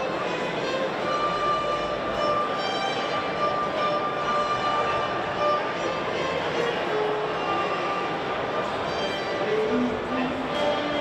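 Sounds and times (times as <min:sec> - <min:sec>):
string ensemble playing: 0:00.0 - 0:11.0.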